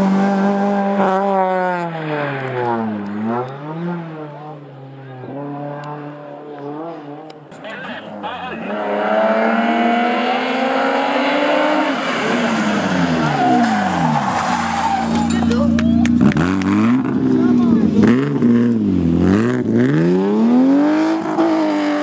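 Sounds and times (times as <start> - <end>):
race car engine revving: 0.0 - 22.0
tyres squealing: 12.0 - 16.2.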